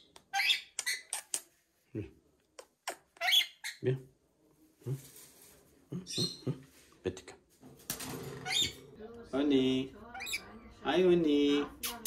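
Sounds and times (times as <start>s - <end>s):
parrot screechy squawks: 3.2s - 3.8s.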